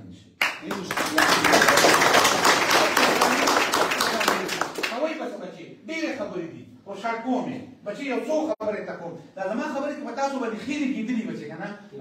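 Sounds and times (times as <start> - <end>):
men clapping applause: 0.4 - 5.2.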